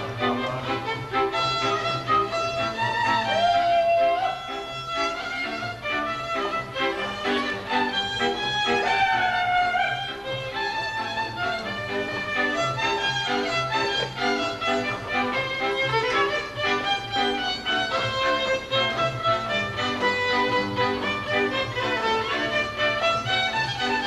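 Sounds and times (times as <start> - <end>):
fiddle melody: 0.0 - 24.0
folk string band playing: 0.0 - 24.0.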